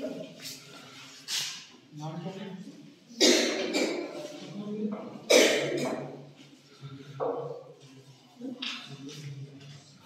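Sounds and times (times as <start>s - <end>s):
person coughing: 3.2s - 4.2s, 5.3s - 6.1s.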